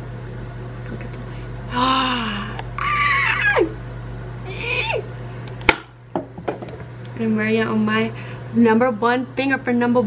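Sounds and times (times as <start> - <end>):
woman squealing: 1.7 - 3.8, 4.5 - 5.1.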